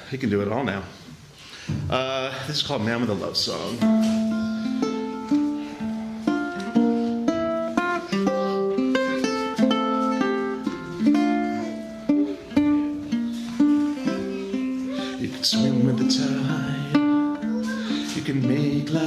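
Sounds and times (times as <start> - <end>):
ukulele plucked notes and chords: 3.8 - 19.0.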